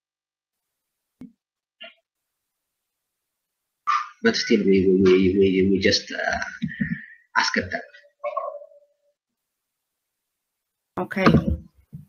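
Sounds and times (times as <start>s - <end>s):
man speaking: 3.9s - 8.6s.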